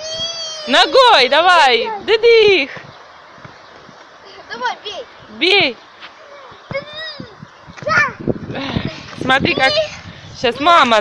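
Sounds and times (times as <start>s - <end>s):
faint outdoor background noise: 0.0s - 11.0s.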